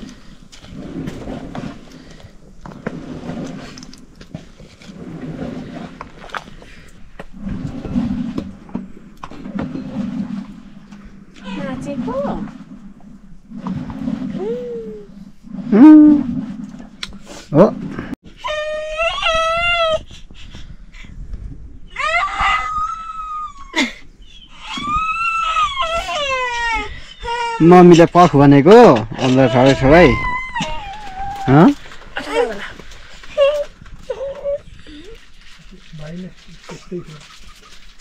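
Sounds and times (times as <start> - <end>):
toddler whining and crying: 29.3 - 31.7.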